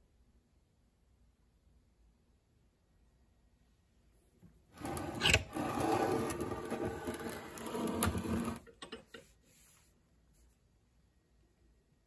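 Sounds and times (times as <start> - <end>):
vise screw grinding and rattling: 4.8 - 9.2.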